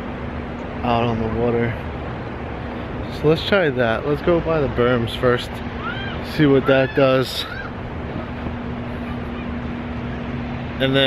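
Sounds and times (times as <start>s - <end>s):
low steady hum: 0.0s - 11.0s
wind and surf rushing: 0.0s - 11.0s.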